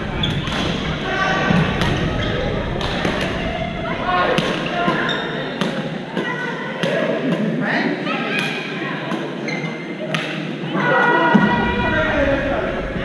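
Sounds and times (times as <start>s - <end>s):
rackets hitting shuttlecocks: 1.5s - 2.1s, 2.7s - 3.4s.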